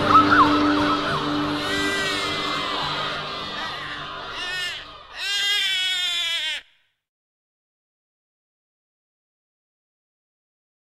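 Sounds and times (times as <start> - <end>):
baby crying: 0.2 - 6.9.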